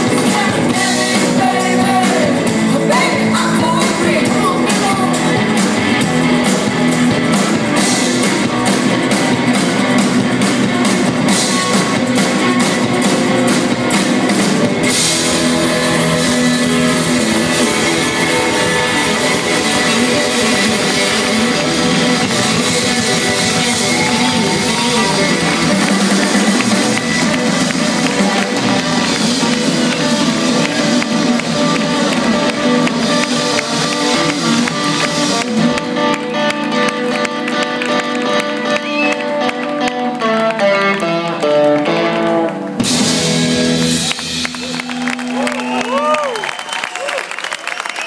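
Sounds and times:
drum kit: 0.0s - 46.8s
electric guitars: 0.0s - 48.0s.

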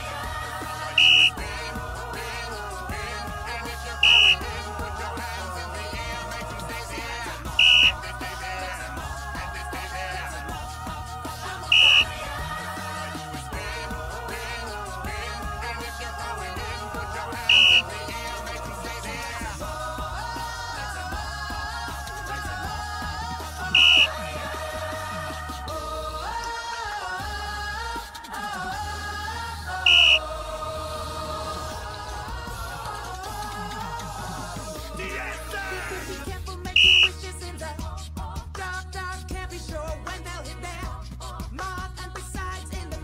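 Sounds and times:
pop music with singing: 0.0s - 43.0s
referee whistle blasts: 1.0s - 1.4s, 4.0s - 4.4s, 7.6s - 8.0s, 11.7s - 12.1s, 17.5s - 17.8s, 23.8s - 24.1s, 29.9s - 30.2s, 36.8s - 37.2s.

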